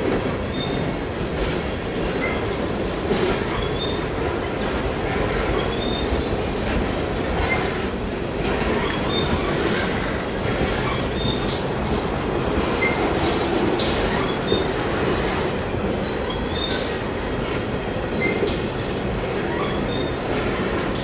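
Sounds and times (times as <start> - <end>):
train wheels rumbling on rails: 0.0 - 21.0
high wheel squeals: 10.8 - 11.6.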